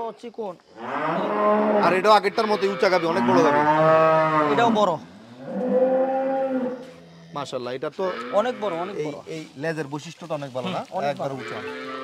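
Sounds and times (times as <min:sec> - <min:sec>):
cow mooing: 0:00.8 - 0:07.3, 0:08.0 - 0:09.0, 0:11.3 - 0:12.0
voices talking: 0:01.2 - 0:05.1, 0:07.3 - 0:12.0.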